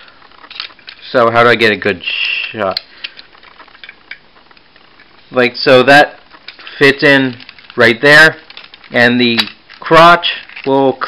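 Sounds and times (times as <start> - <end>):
plastic rubbing: 0.0 - 11.0.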